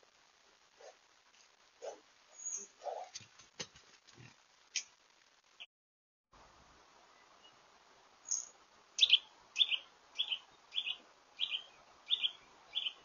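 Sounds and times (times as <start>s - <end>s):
rustling: 2.6s - 5.0s.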